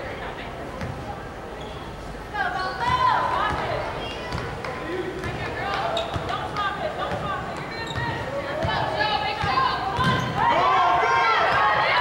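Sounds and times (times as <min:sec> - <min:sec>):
murmur of crowd: 0:00.0 - 0:12.0.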